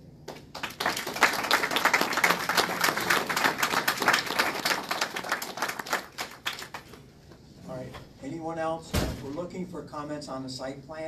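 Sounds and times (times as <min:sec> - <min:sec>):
audience applauding: 0:00.3 - 0:07.0.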